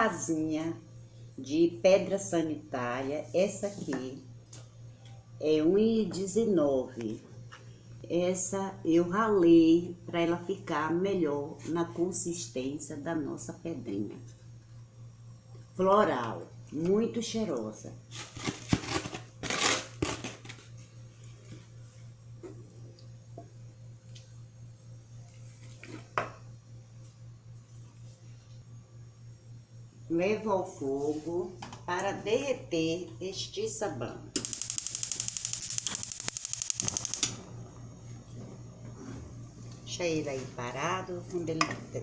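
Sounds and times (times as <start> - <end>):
gas stove igniter clicking: 34.4 - 37.4.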